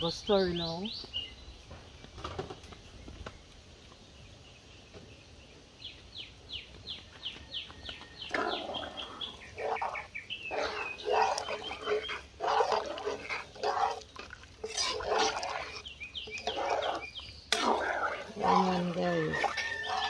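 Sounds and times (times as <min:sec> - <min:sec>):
bird chirping: 0:00.0 - 0:20.0
rough animal calls: 0:08.2 - 0:20.0.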